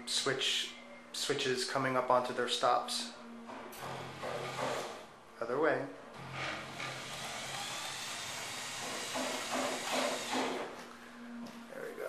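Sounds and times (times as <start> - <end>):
electric motor whirring: 6.8 - 10.5.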